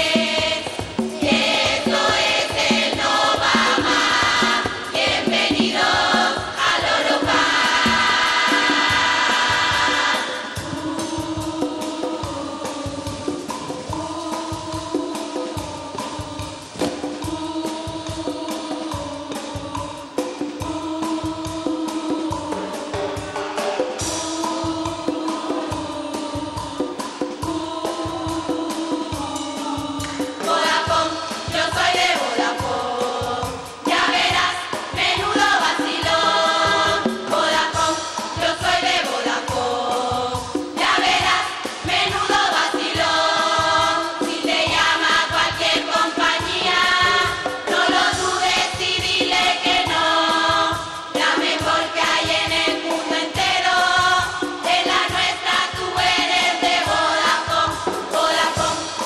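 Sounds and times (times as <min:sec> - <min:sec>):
chorus singing into microphones: 0:00.0 - 0:59.0
steady percussion beat: 0:00.0 - 0:59.0.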